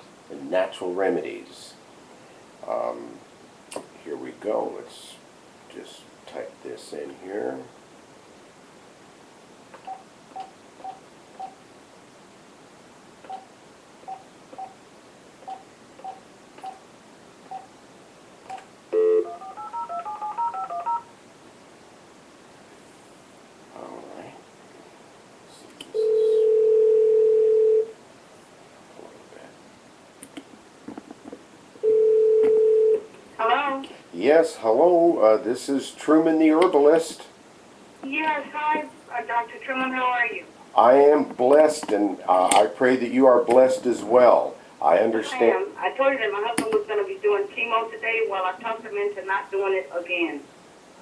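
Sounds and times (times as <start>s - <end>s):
phone keypad beeps: 18.5s - 21.0s
telephone line tone: 18.9s - 21.1s, 26.0s - 27.9s, 31.8s - 33.0s
touch-tone dialing tones: 19.0s - 21.1s.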